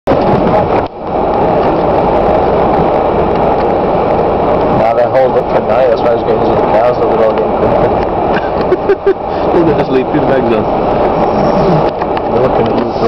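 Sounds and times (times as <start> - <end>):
car engine and tyre noise: 0.1 - 13.0
people talking and laughing: 8.2 - 10.2, 11.1 - 13.0.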